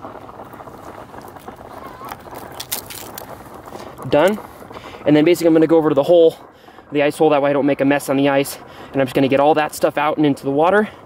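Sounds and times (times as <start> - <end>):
steady background noise: 0.0 - 11.0
knife crunching through fish: 2.0 - 3.3.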